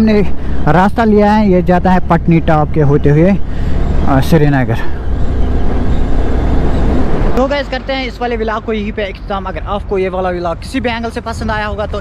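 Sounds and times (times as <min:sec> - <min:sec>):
motorcycle engine rumble: 0:00.0 - 0:10.2
wind rushing over microphone: 0:03.4 - 0:07.4.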